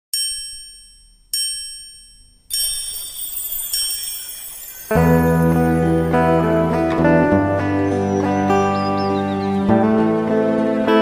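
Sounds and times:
ringing chime strikes: 0.2s - 7.1s
shimmering swell with high sparkle: 2.5s - 7.4s.

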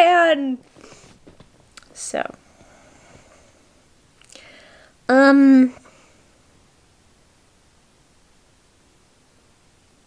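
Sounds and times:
soft intake of breath: 0.7s - 1.2s, 2.4s - 5.0s.

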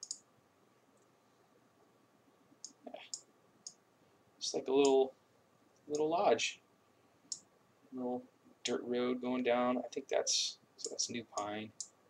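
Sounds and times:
computer mouse clicks: 0.0s - 0.2s.

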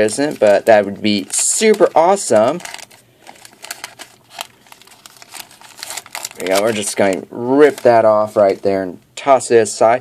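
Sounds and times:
plastic foil wrapper crinkling and tearing: 0.0s - 8.9s.

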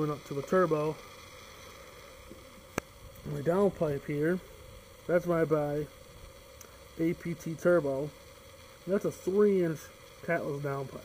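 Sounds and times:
low steady background hiss: 0.0s - 11.0s.

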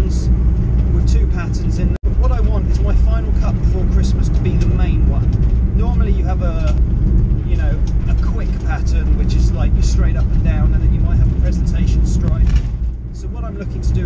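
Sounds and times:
van engine and road rumble: 0.0s - 14.0s
man talking: 0.9s - 6.8s, 7.4s - 14.0s.

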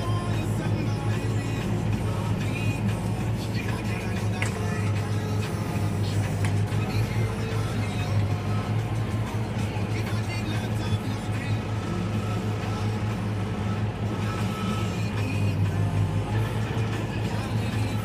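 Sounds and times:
music playing: 0.0s - 18.0s
tractor engine droning: 0.0s - 18.0s.

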